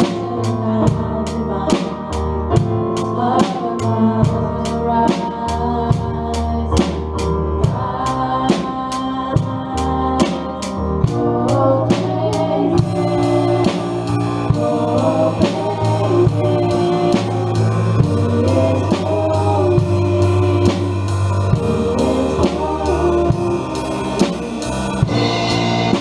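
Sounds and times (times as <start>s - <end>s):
drum kit beat: 0.0s - 26.0s
people singing: 0.0s - 26.0s
worship band playing live: 0.0s - 26.0s
cymbals: 12.0s - 26.0s.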